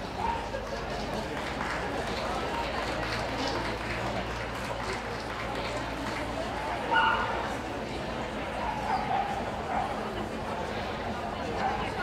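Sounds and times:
murmur of spectators' voices: 0:00.0 - 0:12.0.

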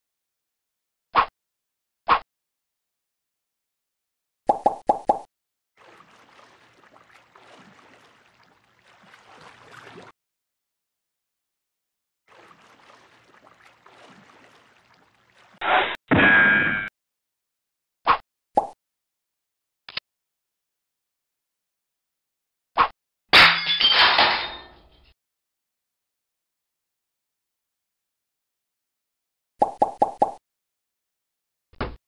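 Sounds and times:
cartoon wet plops: 0:04.5 - 0:05.3.

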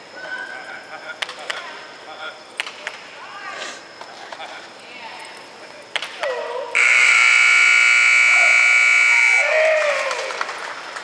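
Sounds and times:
timing buzzer blast: 0:06.8 - 0:09.6.

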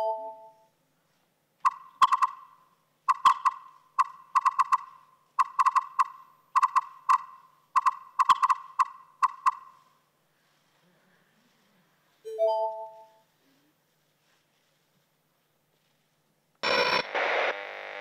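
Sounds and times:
smartphone notification pings: 0:00.0 - 0:00.6, 0:12.3 - 0:13.2.

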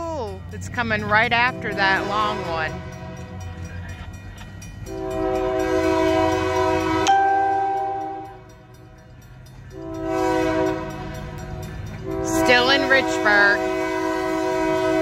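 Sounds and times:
locomotive horn blasts: 0:01.3 - 0:03.6, 0:04.8 - 0:08.5, 0:09.7 - 0:11.4, 0:12.0 - 0:15.0.

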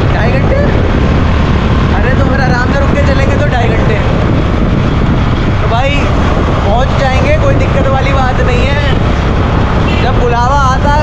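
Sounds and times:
vehicle engine rumble: 0:00.0 - 0:11.0
wind rushing over microphone: 0:00.0 - 0:11.0.

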